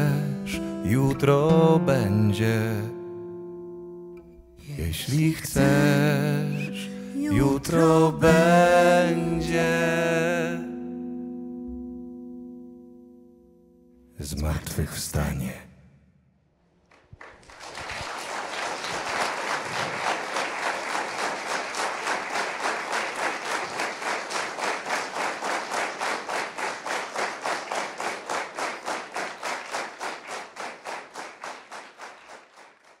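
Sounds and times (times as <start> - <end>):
rhythmic clapping in unison: 16.8 - 33.0
audience applause: 16.9 - 33.0.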